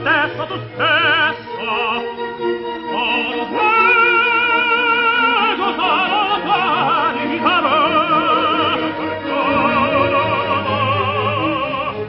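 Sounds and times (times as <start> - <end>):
operatic tenor singing: 0.0 - 12.0
sustained musical accompaniment: 0.0 - 12.0.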